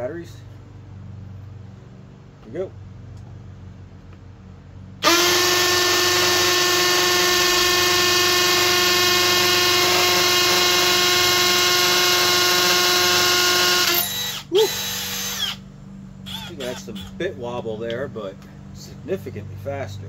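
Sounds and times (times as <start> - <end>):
hammer drill boring into concrete: 5.0 - 15.6.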